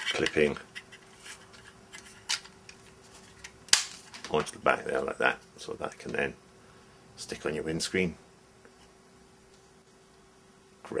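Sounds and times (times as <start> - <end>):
plastic rubbing: 0.0 - 4.6.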